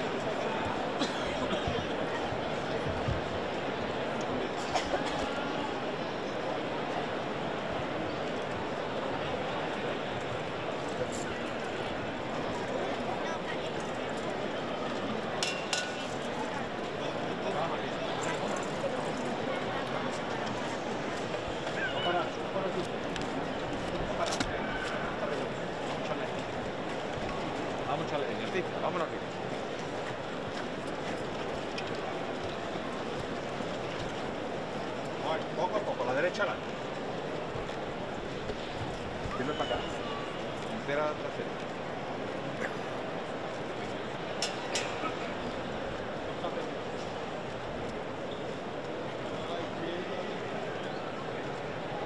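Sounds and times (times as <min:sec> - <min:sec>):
crowd hubbub: 0:00.0 - 0:52.0.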